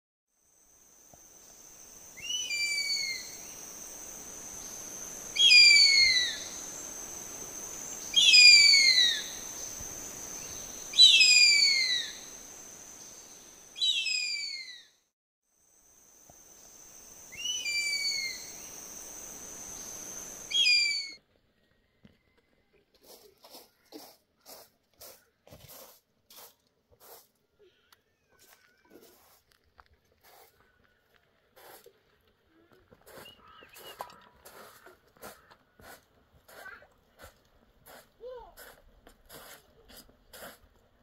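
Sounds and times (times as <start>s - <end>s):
bird of prey screaming: 5.4s - 6.6s, 8.1s - 9.4s, 10.9s - 12.3s, 13.8s - 14.9s, 17.4s - 18.6s, 20.5s - 21.2s.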